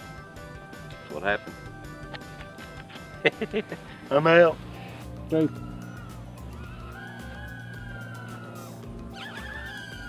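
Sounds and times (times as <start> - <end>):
quadcopter motors whining: 4.5 - 10.0.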